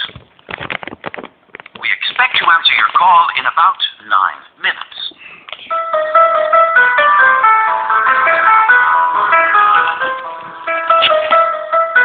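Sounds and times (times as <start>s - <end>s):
hold music over phone line: 5.7s - 12.0s.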